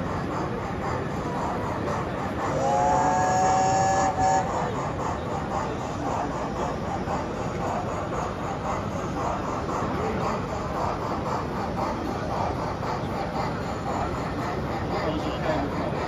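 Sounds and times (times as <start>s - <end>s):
steam locomotive chuffing: 0.0s - 16.0s.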